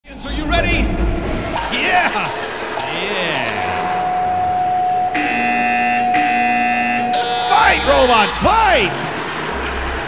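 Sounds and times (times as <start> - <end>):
steady electronic tone: 0.1 - 9.0
harsh electronic buzzer: 4.8 - 9.0.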